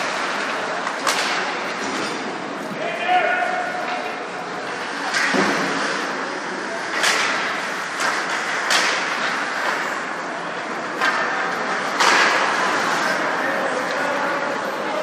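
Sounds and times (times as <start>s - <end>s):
hockey sticks and puck cracking: 0.0s - 2.3s, 4.7s - 14.4s
arena noise and voices: 0.0s - 15.0s.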